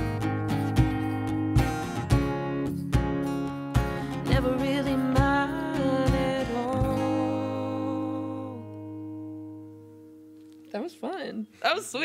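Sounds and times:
acoustic guitar chord ringing: 0.0 - 10.9.

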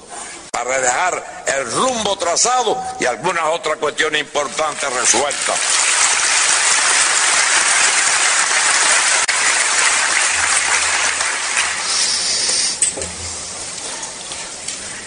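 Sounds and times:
audience applauding: 4.8 - 12.8.

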